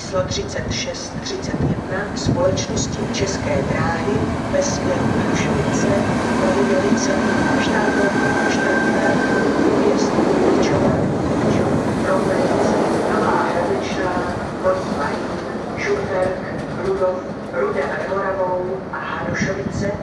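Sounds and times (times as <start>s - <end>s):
train running past: 0.0s - 20.0s.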